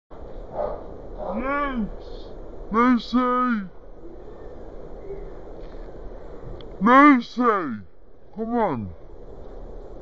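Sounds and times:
low background rumble: 0.1 - 10.0
man calling to a dog: 1.2 - 3.8, 6.8 - 9.0.

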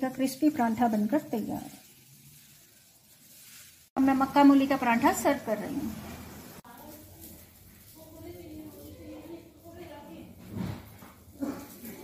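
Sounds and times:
flatbread sizzling in ghee: 0.0 - 12.0.

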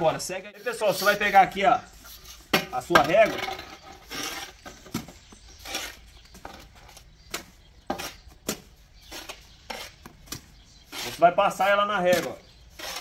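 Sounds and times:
trowel clinking and scraping metal: 10.9 - 13.0.

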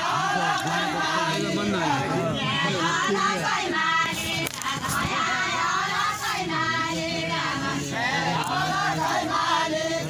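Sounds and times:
voices singing together: 0.0 - 10.0.

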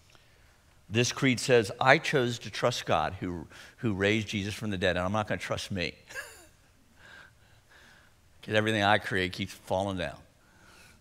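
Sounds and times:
man breathing softly: 7.0 - 8.3, 10.4 - 11.0.

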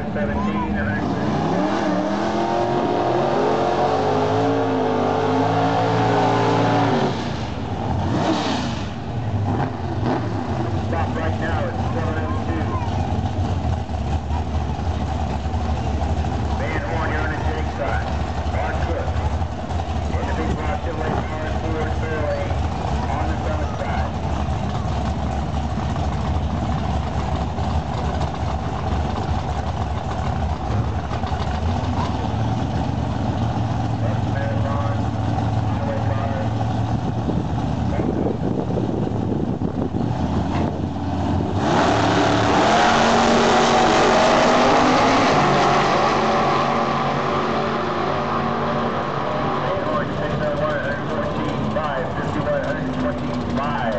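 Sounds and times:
car engines idling: 0.0 - 53.9
faint voices: 10.8 - 13.3, 16.5 - 25.2, 49.6 - 53.9.

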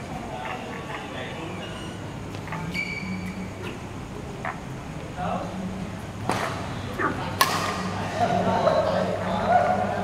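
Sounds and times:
racket striking shuttlecock: 7.4 - 7.9.

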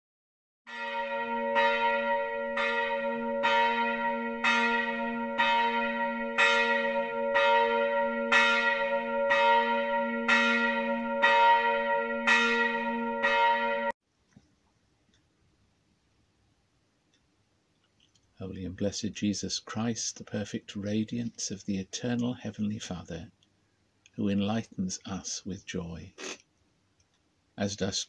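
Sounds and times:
church bell tolling: 0.7 - 14.0.

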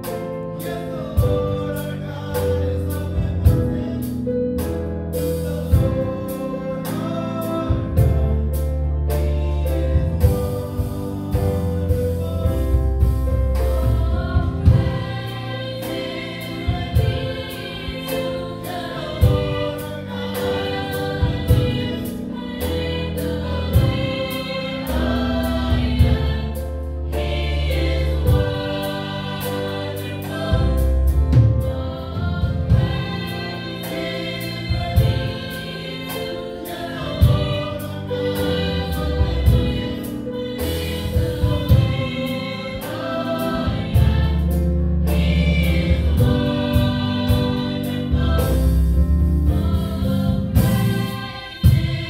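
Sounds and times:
band with drums: 3.2 - 7.0, 9.9 - 22.2, 22.8 - 24.5, 27.4 - 48.9, 49.5 - 52.0
women singing in harmony: 9.6 - 52.0.

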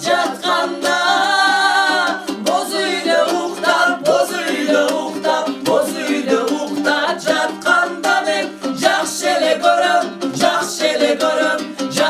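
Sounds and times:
group singing: 0.0 - 12.0
plucked lute: 0.0 - 12.0.

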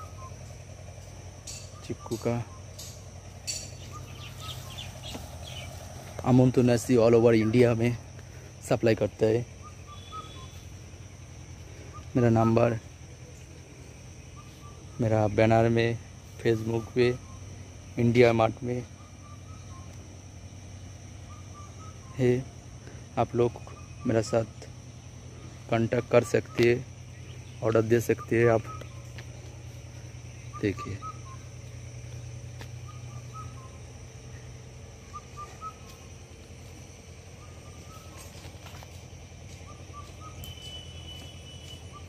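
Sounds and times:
bird whistled calls: 0.0 - 0.6, 1.5 - 5.9, 9.5 - 10.8, 11.7 - 13.5, 14.3 - 15.0, 16.6 - 17.6, 18.9 - 20.0, 21.2 - 22.5, 23.5 - 24.6, 25.3 - 31.6, 32.2 - 36.1, 37.3 - 38.7, 39.5 - 42.0
high-pitched insect drone: 0.0 - 42.0
low outdoor rumble: 0.0 - 42.0
steady low hum: 0.0 - 42.0.

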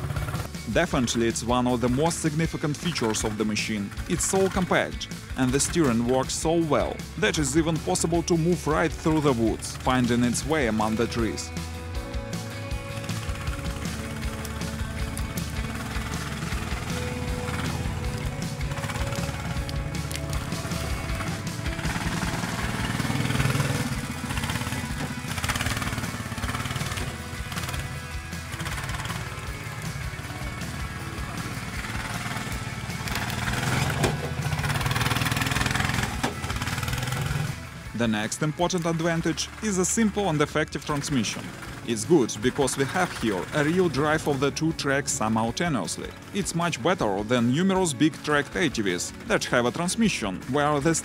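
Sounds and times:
background music: 0.0 - 51.0
tracked atv engine running: 0.0 - 51.0.

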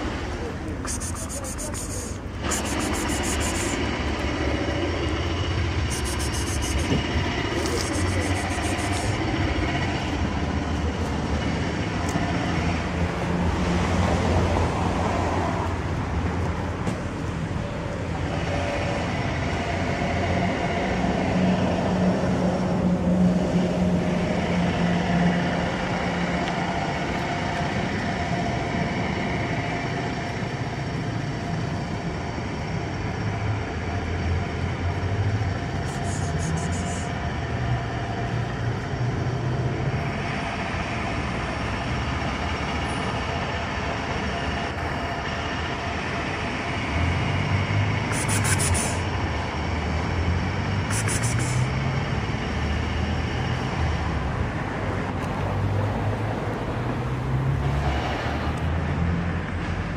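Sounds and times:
passing vehicle rumble: 0.0 - 59.9.

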